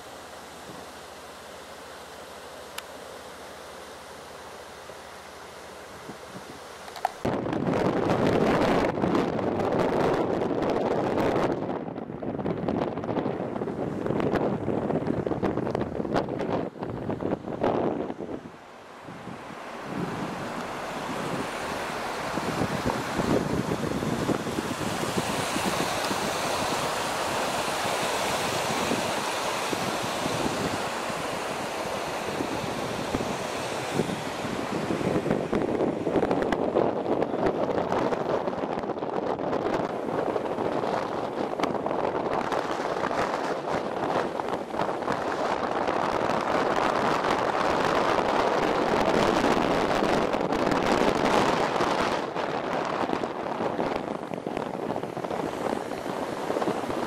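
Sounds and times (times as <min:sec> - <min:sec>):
wind gusts on microphone: 0:06.0 - 0:57.0
floodwater rushing: 0:14.8 - 0:57.0.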